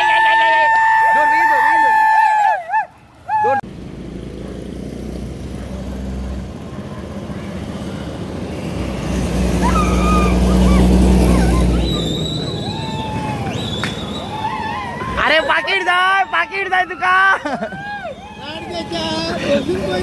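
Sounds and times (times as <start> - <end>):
road noise: 0.0 - 20.0.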